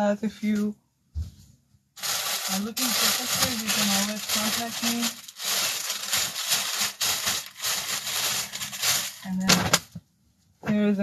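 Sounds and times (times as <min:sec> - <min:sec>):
garments rustling: 0:02.0 - 0:09.4.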